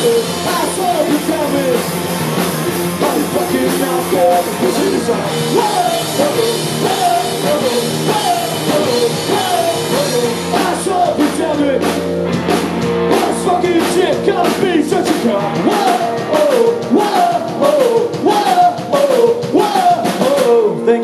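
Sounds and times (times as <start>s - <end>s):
bass guitar: 0.0s - 21.0s
drum kit with cymbal hits: 0.0s - 21.0s
electric guitars: 0.0s - 21.0s.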